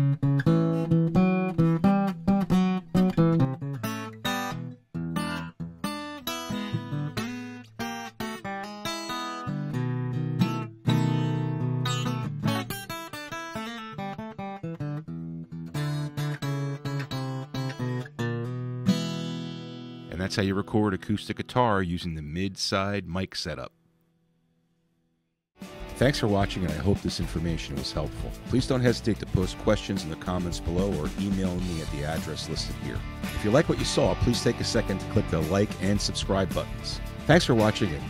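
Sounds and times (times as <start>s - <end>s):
acoustic guitar strumming: 0.0s - 21.3s, 25.6s - 38.0s.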